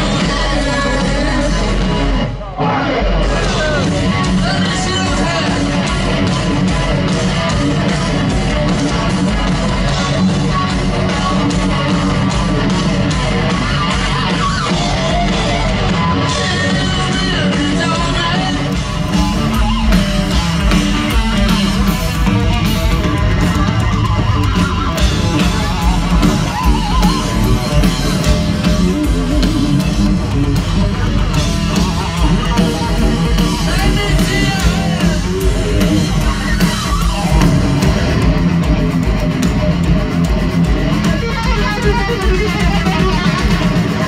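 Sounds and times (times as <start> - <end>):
electric guitar: 0.0 - 44.0
live heavy metal band: 0.0 - 44.0
pounding drums: 0.0 - 44.0.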